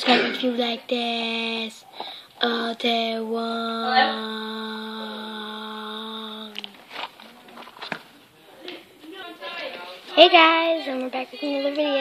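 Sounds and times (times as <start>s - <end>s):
girl singing long note: 2.4s - 6.8s.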